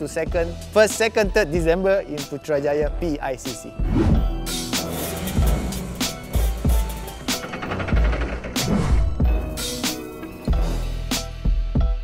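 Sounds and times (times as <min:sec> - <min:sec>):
music with heavy beat: 0:03.8 - 0:12.0.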